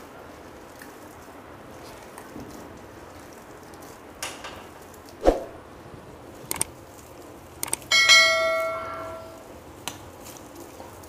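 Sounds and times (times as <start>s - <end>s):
quick clicks: 6.5s - 6.7s, 7.6s - 7.9s.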